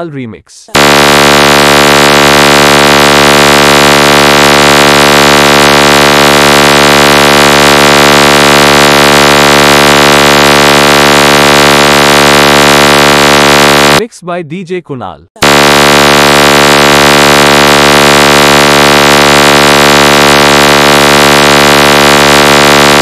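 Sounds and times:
person speaking: 0.0s - 0.8s, 14.0s - 15.3s
loud electronic buzzing tone: 0.7s - 14.1s, 15.4s - 23.0s.

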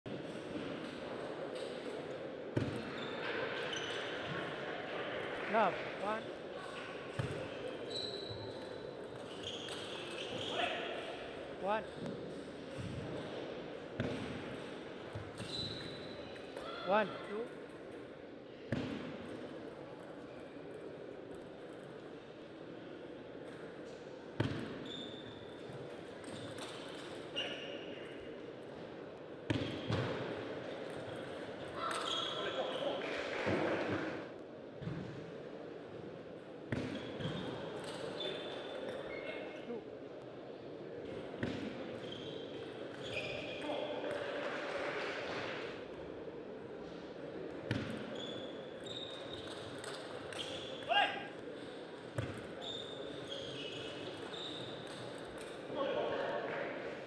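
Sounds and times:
background hum of hall: 0.1s - 57.0s
shoes squeaking on floor: 7.8s - 8.6s, 9.2s - 10.8s, 15.4s - 16.2s, 24.8s - 25.5s, 31.8s - 32.9s, 42.0s - 43.8s, 48.0s - 50.9s, 52.5s - 55.1s.

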